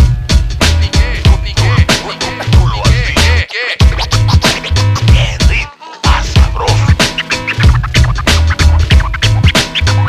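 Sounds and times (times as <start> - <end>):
hip hop beat with heavy bass: 0.0 - 10.0
turntable record scratching: 0.6 - 10.0.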